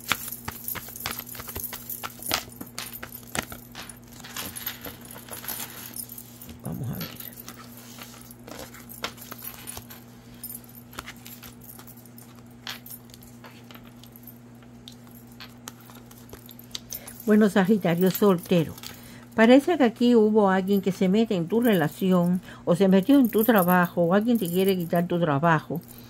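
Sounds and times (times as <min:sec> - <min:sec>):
cards shuffled with light clicks: 0:00.0 - 0:03.7
low electrical hum: 0:00.0 - 0:26.0.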